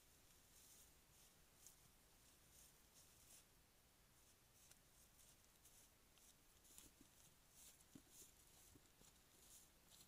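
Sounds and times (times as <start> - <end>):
rustling in dry grass: 0.0 - 10.0.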